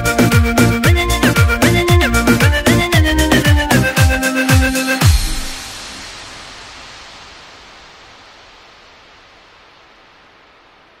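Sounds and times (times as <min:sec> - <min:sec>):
steady hiss: 0:04.8 - 0:11.0.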